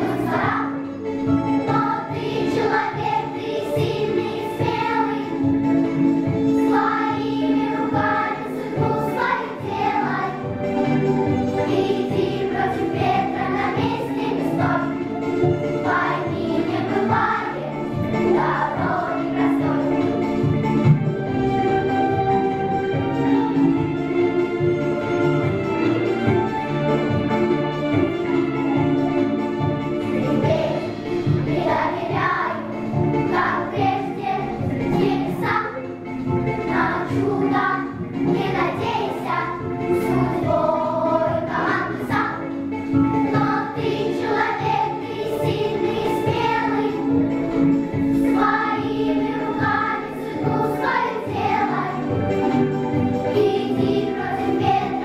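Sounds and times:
girls' choir singing: 0:00.0 - 0:22.1, 0:30.0 - 0:55.0
instrumental accompaniment: 0:00.0 - 0:55.0.

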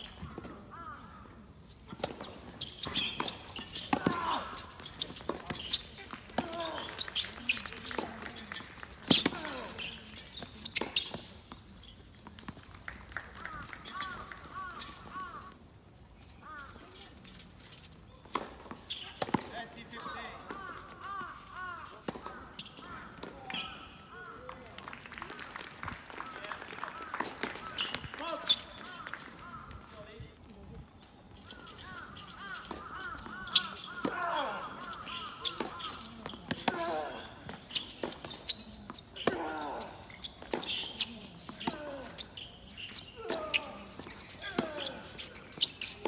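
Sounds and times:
tennis ball bouncing on court: 0:01.9 - 0:11.6, 0:18.3 - 0:23.7, 0:31.6 - 0:42.3, 0:42.9 - 0:46.0
voices in background: 0:16.4 - 0:46.0
crows cawing: 0:31.8 - 0:34.0.

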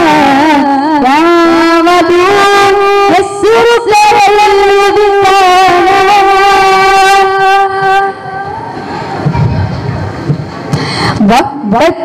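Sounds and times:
boy singing into microphone: 0:00.0 - 0:09.6
background noise: 0:00.0 - 0:12.0.

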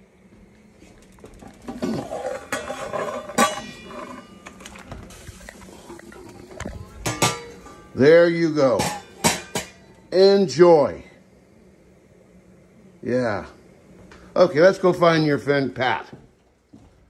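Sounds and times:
boiling water hiss: 0:00.0 - 0:16.8
stockpot and lid clinking: 0:07.0 - 0:08.0, 0:08.8 - 0:09.9.

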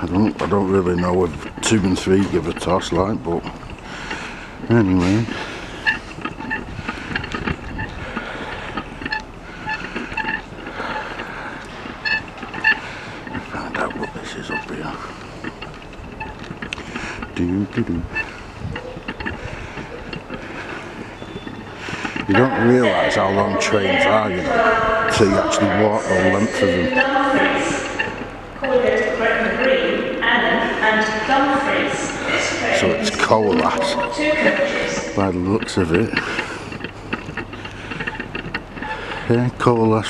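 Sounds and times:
diesel engine idling: 0:00.0 - 0:40.0
wind buffeting microphone: 0:00.0 - 0:40.0.

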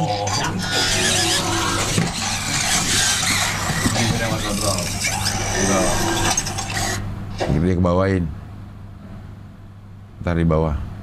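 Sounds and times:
toy servo motors running: 0:00.0 - 0:07.0.

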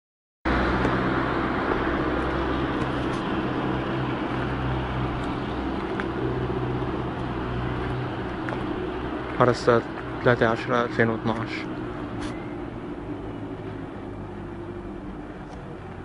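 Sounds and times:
road noise: 0:00.5 - 0:16.0.

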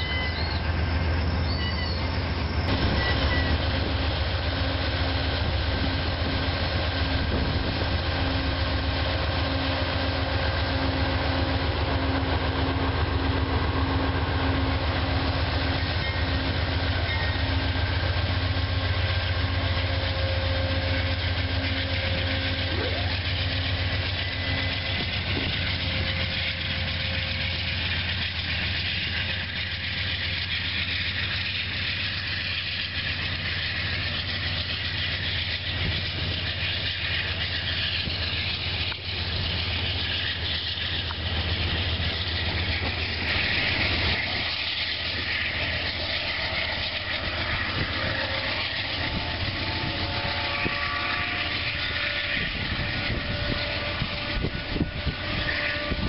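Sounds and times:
diesel locomotive engine drone: 0:00.0 - 0:56.0
pulsing whine: 0:00.0 - 0:56.0.

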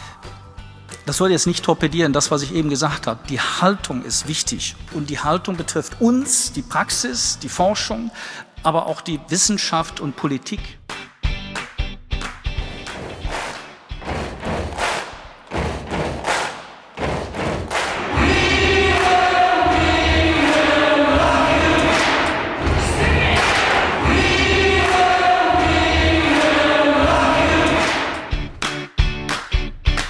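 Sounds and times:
scattered thumps: 0:13.0 - 0:18.6
crowd singing together: 0:17.7 - 0:28.4.

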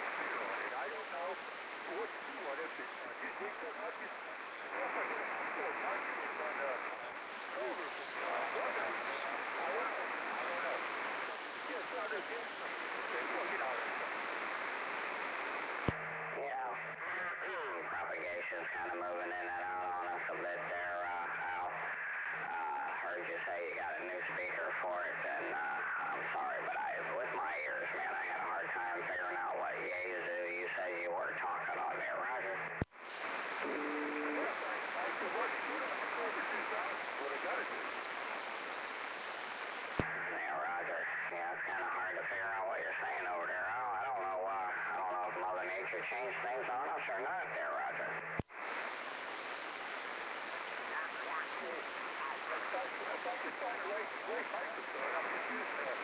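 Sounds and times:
radio static hiss: 0:00.0 - 0:56.0
radio voice transmissions: 0:00.0 - 0:56.0
radio clicks: 0:12.5 - 0:16.3, 0:32.6 - 0:40.3.

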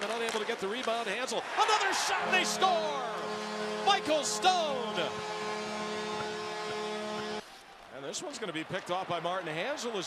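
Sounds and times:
ice rink ambience: 0:00.0 - 0:08.4
arena crowd cheering: 0:01.1 - 0:10.0
steady held tone: 0:02.2 - 0:07.4.

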